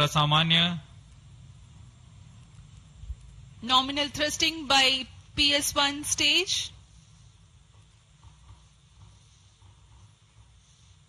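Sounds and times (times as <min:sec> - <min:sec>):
faint low rumble: 0:00.0 - 0:10.8.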